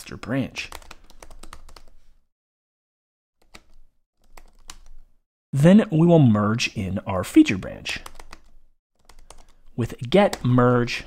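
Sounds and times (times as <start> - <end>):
computer keyboard typing: 0.7 - 1.9, 3.4 - 5.1, 8.0 - 10.6.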